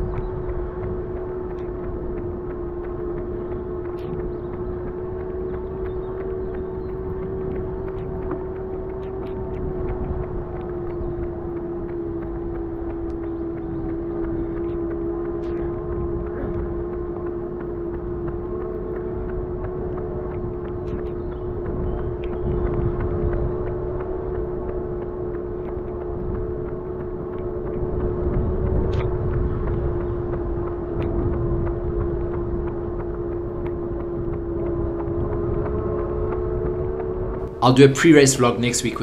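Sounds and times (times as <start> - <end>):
small motor whine: 0.0 - 37.4
wind rumbling on microphone: 0.0 - 39.0.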